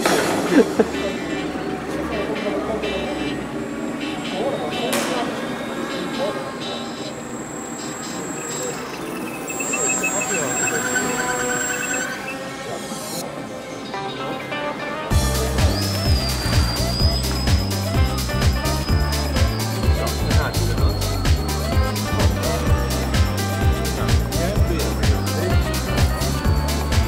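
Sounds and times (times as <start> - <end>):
people talking: 0.0 - 14.2, 15.1 - 27.0
model plane motor whine: 7.2 - 12.3.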